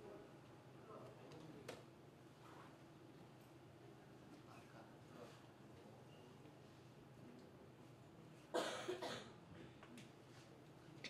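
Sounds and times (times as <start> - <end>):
person coughing: 8.6 - 9.4.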